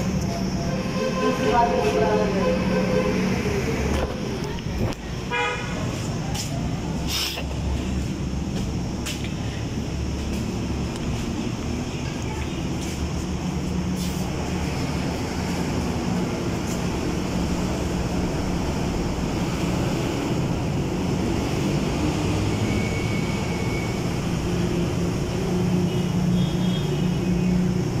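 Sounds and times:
indistinct voices: 0.0s - 19.7s
traffic rumble: 0.0s - 28.0s.

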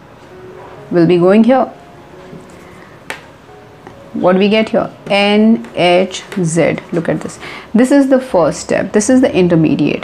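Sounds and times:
marker tapping on whiteboard: 3.1s - 3.3s.

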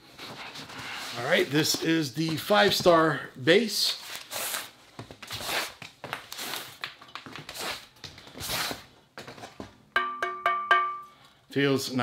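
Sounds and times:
knocks on ringing metal base: 10.0s - 11.1s.

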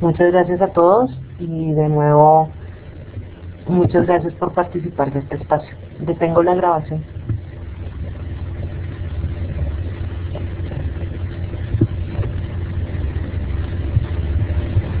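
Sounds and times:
faint hum: 0.0s - 15.0s
steady low rumble: 0.0s - 15.0s.

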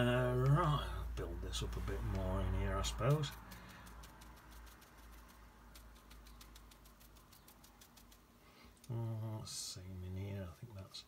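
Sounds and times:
brush dabbing paint on paper: 1.6s - 8.8s.

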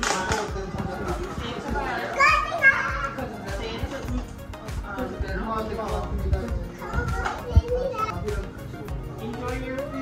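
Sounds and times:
young children talking and playing: 0.0s - 10.0s
child's high-pitched voice: 2.2s - 3.2s, 6.7s - 8.4s.

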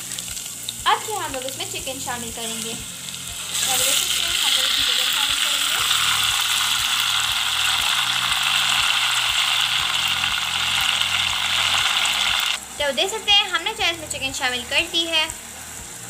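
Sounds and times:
chicken sizzling in hot oil: 0.0s - 16.0s.

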